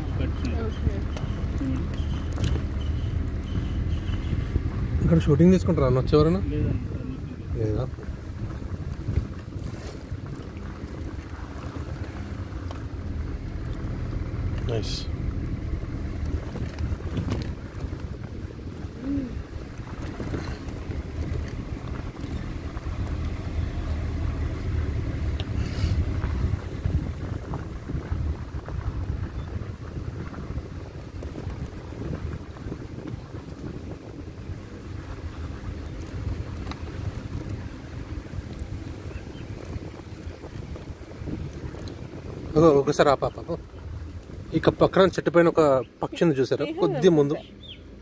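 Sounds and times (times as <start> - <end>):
vehicle engine and road rumble: 0.0 - 48.0
wind buffeting microphone: 0.0 - 48.0.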